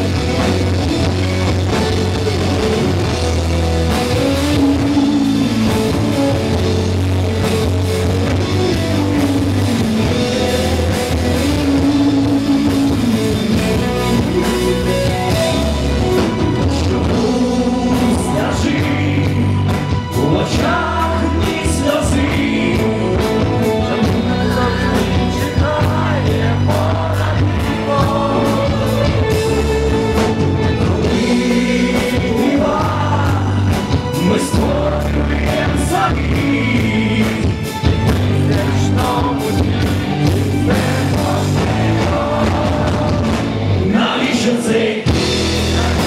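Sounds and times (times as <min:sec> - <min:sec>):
bass guitar: 0:00.0 - 0:46.0
drums: 0:00.0 - 0:46.0
electric guitars: 0:00.0 - 0:46.0
person singing: 0:00.0 - 0:46.0.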